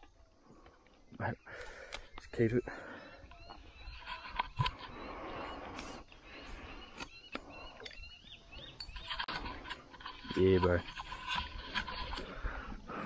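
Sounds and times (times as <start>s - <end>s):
birds chirping: 0.0s - 13.0s.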